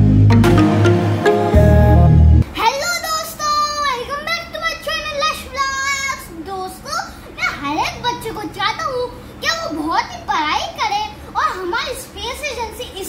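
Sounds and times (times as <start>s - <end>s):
boy speaking: 2.5s - 13.0s.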